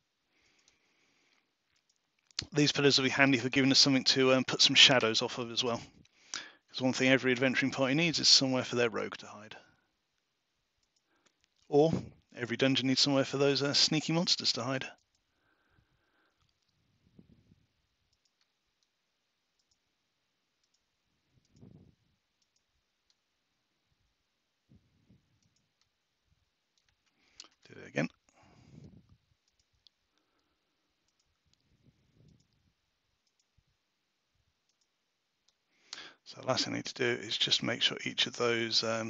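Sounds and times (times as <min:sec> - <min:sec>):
computer mouse clicks: 0:01.7 - 0:02.5, 0:18.1 - 0:18.9, 0:19.6 - 0:19.9, 0:20.6 - 0:21.8, 0:22.4 - 0:23.2, 0:25.3 - 0:26.0, 0:26.7 - 0:27.6, 0:29.4 - 0:33.6, 0:34.7 - 0:36.0.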